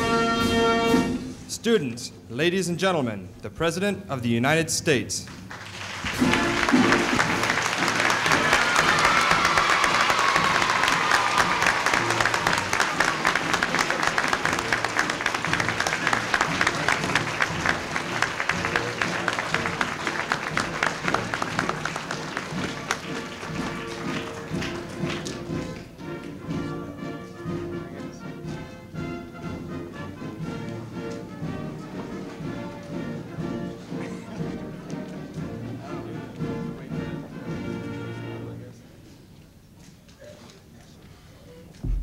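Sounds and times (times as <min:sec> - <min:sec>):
music: 0:00.0 - 0:40.2
audience applauding: 0:05.3 - 0:26.0.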